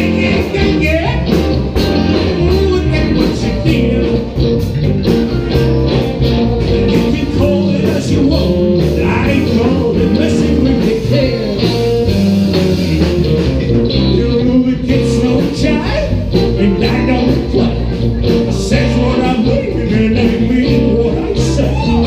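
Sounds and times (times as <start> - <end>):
man singing: 0.0 - 4.6, 6.9 - 12.1, 13.8 - 22.0
bass: 0.0 - 22.0
drum kit beat: 0.0 - 22.0
electric guitars: 0.0 - 22.0.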